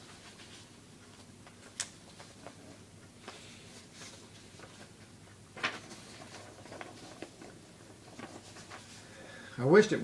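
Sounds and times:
paper sheets rustling: 2.0 - 9.1.

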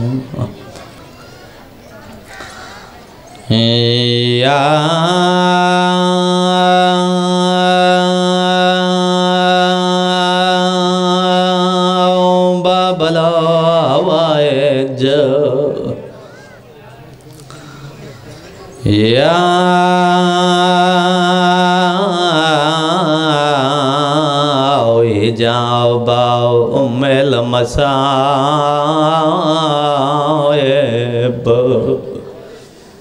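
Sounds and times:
man chanting amplified: 0.0 - 0.8, 3.5 - 32.6
low background murmur: 0.0 - 3.7, 16.0 - 19.1.

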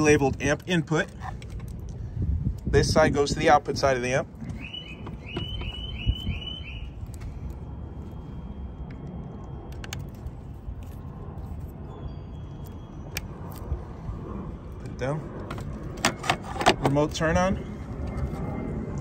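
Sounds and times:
outdoor background noise: 0.0 - 19.0
high chirping beep: 4.6 - 7.0.

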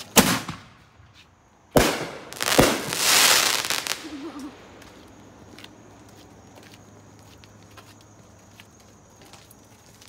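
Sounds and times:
firework burst crackling: 1.8 - 4.8.

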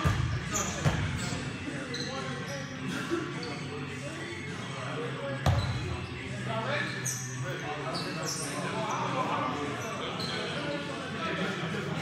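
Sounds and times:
basketball bouncing on court: 0.0 - 1.2, 5.4 - 5.8
players' voices: 0.0 - 12.0.

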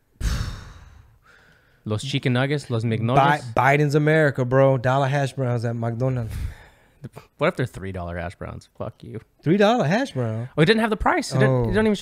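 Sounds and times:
man sighing: 0.2 - 1.7.

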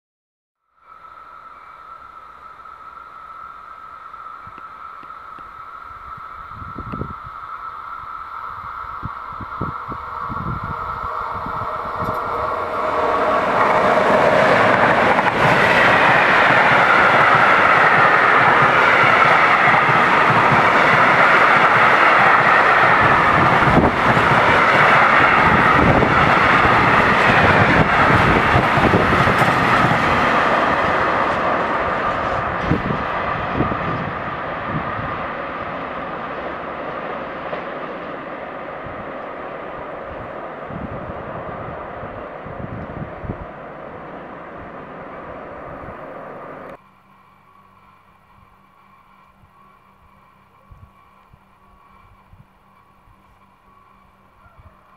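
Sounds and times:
freight train wheels rolling on rails: 0.8 - 54.9
steady high ringing: 33.4 - 54.4.

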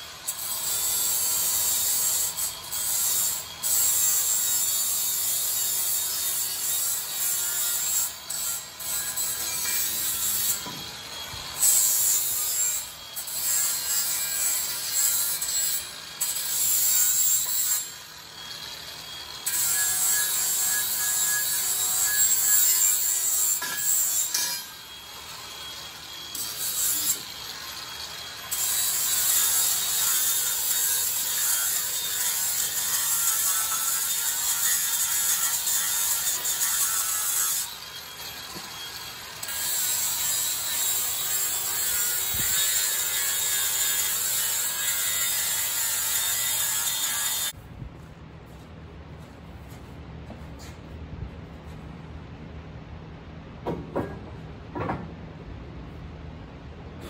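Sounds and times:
angle grinder grinding steel: 0.0 - 47.6.

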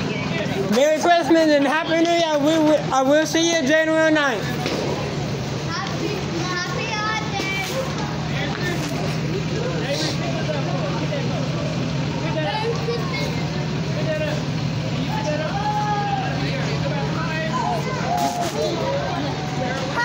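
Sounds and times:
bus engine droning: 0.0 - 20.0
people chattering: 0.0 - 20.0.

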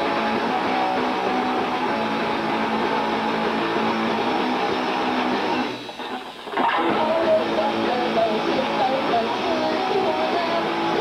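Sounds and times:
live band with electric guitar: 0.0 - 11.0.

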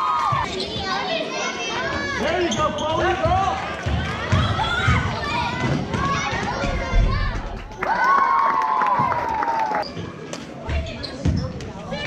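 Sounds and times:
spectators' voices: 0.0 - 12.0
basketball bouncing on gym floor: 2.8 - 7.0.

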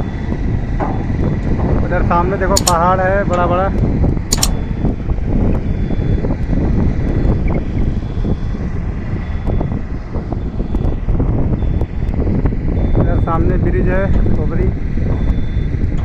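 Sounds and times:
wind buffeting microphone: 0.0 - 16.0
sharp click: 2.5 - 3.5, 4.3 - 4.7.

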